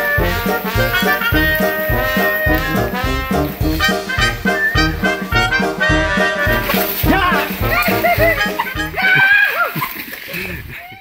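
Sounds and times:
voices: 7.0 - 10.0.

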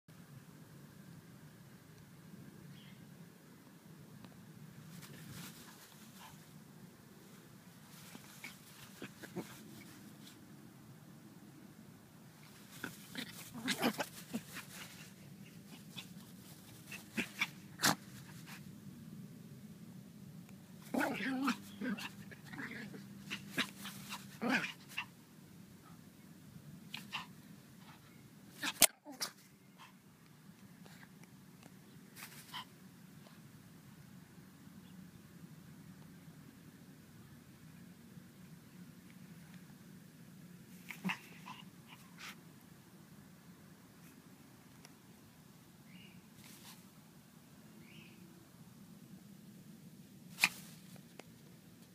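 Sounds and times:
small dog making sharp sounds: 12.5 - 18.6, 20.8 - 25.2, 28.5 - 30.0, 40.7 - 42.4, 50.3 - 50.8
sharp loud snap: 50.3 - 50.8.

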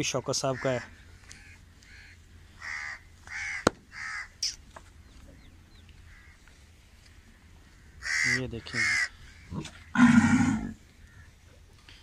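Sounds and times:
cow low call: 9.5 - 10.8.

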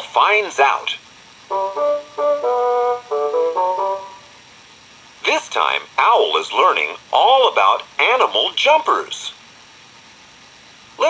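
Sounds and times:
faint tape hiss: 0.0 - 11.0
short musical jingle: 1.5 - 4.3.

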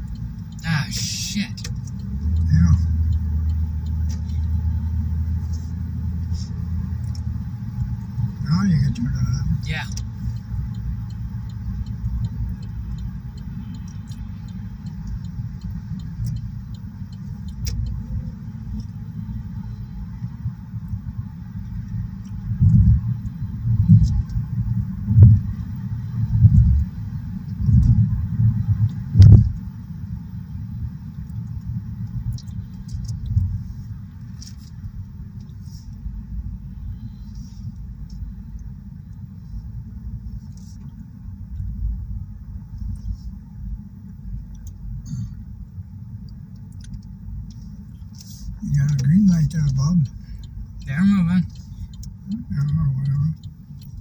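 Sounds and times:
car road rumble and tyre noise: 0.0 - 54.0
low thumps: 29.1 - 29.6.

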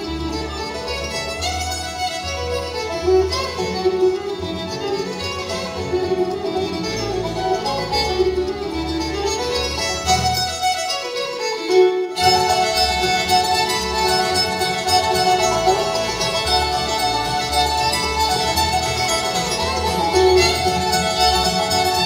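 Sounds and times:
upright bass plucking: 0.0 - 10.6, 12.2 - 22.0
banjo: 0.0 - 22.0
fiddle melody: 0.0 - 22.0
mandolin: 0.0 - 22.0
guitar: 12.2 - 22.0.

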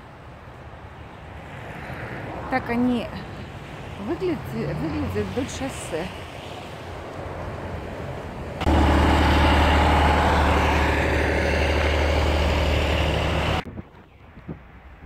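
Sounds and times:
street traffic noise: 0.0 - 15.0
truck engine drone: 6.8 - 15.0.

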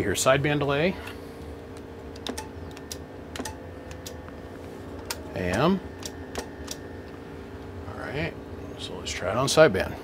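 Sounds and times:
low electrical hum: 0.0 - 10.0
switch clicks and taps: 2.2 - 4.4, 5.0 - 7.2.

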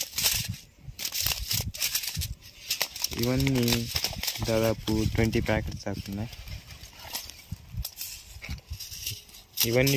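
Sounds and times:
foil packet crinkles: 0.0 - 8.2
seed packets rustling: 0.0 - 9.9.

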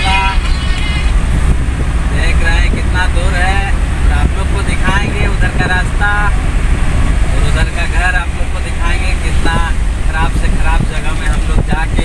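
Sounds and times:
man talking: 0.0 - 1.1, 2.1 - 6.5, 7.2 - 12.0
van engine and road rumble: 0.0 - 12.0.

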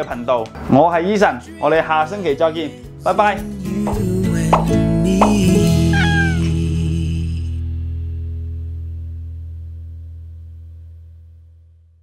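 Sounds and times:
background music with low notes: 0.0 - 10.6
cat meow: 5.9 - 6.6.

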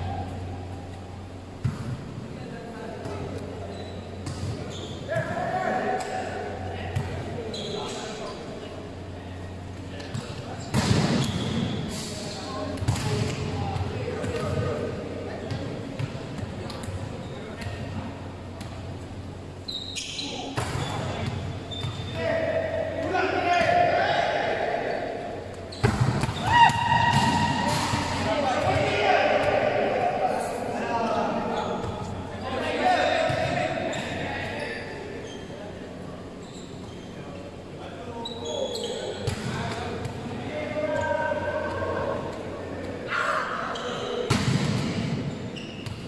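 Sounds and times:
volleyball slaps in a hall: 0.0 - 46.0.

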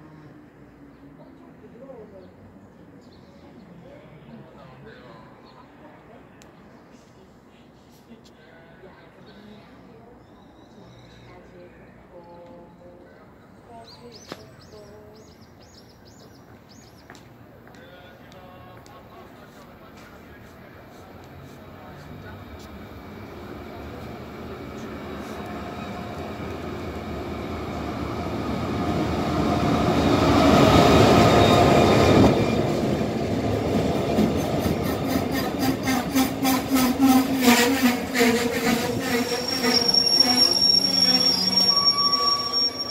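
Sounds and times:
diesel locomotive passing: 17.4 - 42.9
train wheels squealing: 30.6 - 32.6, 34.4 - 42.9.

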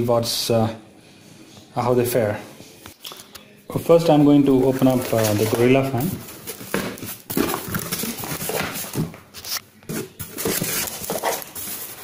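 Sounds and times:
cardboard box rustling and scraping: 4.7 - 12.0.

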